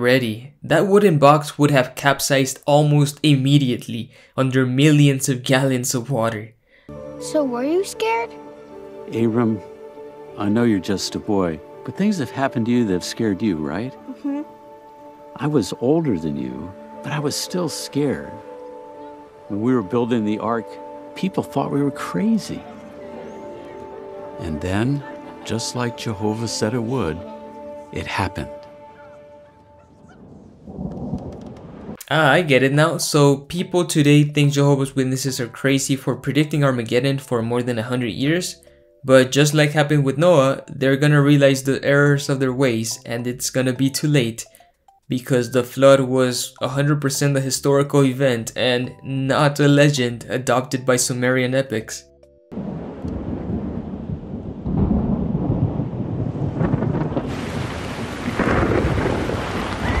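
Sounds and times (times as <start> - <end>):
pouring rain: 8.3 - 29.0, 29.6 - 33.2, 52.6 - 60.0
low rumble of thunder: 29.7 - 32.0, 52.6 - 60.0.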